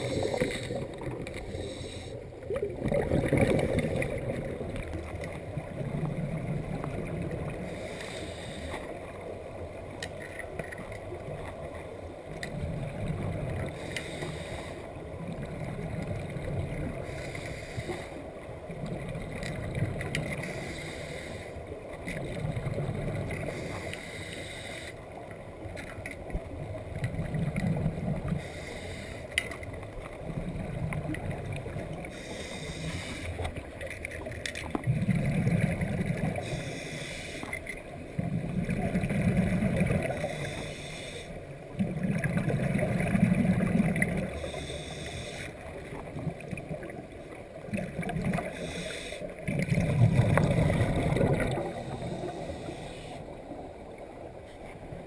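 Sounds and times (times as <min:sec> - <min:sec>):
regulator hiss on inhale: 0:00.0 - 0:02.4, 0:07.6 - 0:09.0, 0:13.7 - 0:15.0, 0:17.0 - 0:18.3, 0:20.2 - 0:21.7, 0:23.4 - 0:25.1, 0:28.3 - 0:29.5, 0:32.0 - 0:33.5, 0:36.3 - 0:37.6, 0:40.1 - 0:41.7, 0:44.3 - 0:45.8, 0:48.4 - 0:49.4, 0:51.6 - 0:53.6
exhaled bubbles rumbling: 0:02.3 - 0:07.9, 0:10.5 - 0:13.9, 0:21.9 - 0:23.7, 0:26.3 - 0:28.5, 0:29.8 - 0:32.2, 0:33.4 - 0:36.6, 0:37.9 - 0:40.4, 0:41.6 - 0:44.5, 0:45.7 - 0:48.6, 0:49.4 - 0:55.0.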